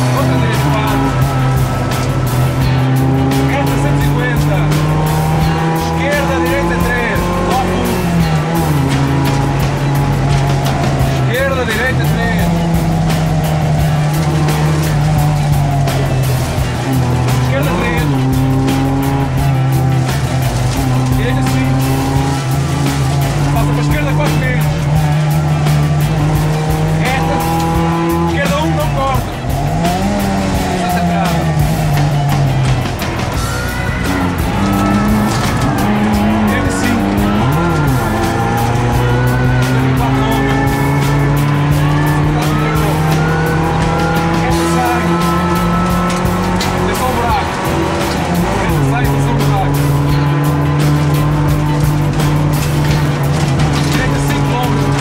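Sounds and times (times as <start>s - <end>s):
car engine revving through gears: 0.0s - 55.0s.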